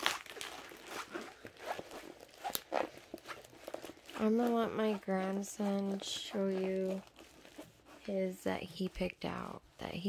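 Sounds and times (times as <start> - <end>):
faint rustling of canvas: 0.0 - 10.0.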